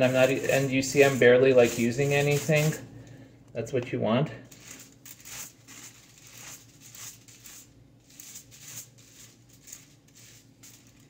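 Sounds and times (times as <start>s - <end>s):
scratchy brush strokes: 0.0s - 2.9s, 4.5s - 11.0s.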